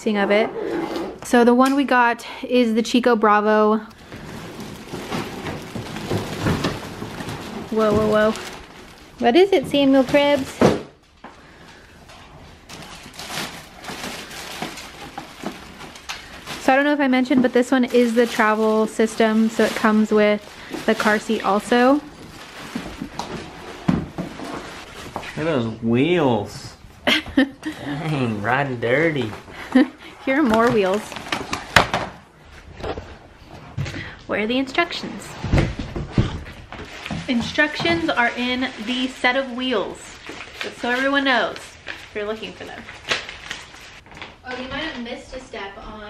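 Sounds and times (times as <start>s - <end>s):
plastic bag crinkling: 4.0s - 25.1s, 36.8s - 44.6s.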